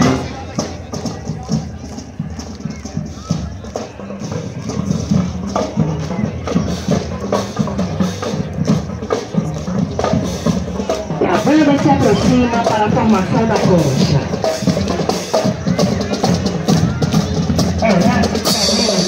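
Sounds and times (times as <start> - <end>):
marching band music: 0.0 - 19.0
voices: 0.0 - 19.0.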